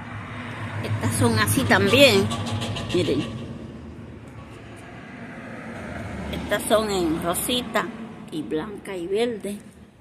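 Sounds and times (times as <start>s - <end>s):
distant vehicle rumble: 0.0s - 10.0s.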